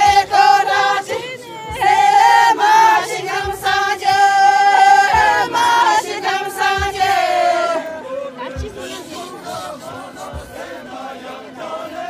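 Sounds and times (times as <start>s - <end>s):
women singing in unison: 0.0s - 12.0s.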